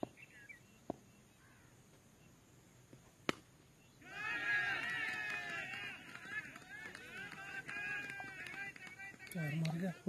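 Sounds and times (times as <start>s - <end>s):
faint bird chirps: 0.0s - 2.5s, 3.6s - 4.0s.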